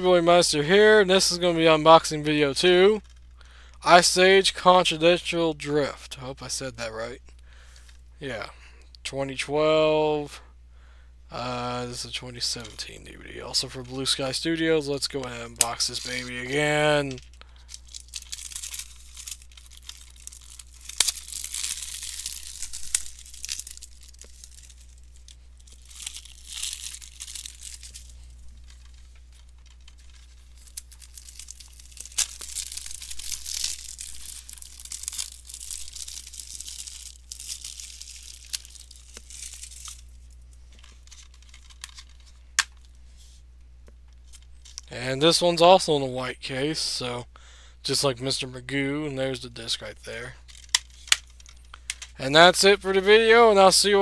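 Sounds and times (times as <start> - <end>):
steady low hum: 0.0 - 54.0
shrink-wrap crinkling and tearing: 12.4 - 43.0, 49.4 - 54.0.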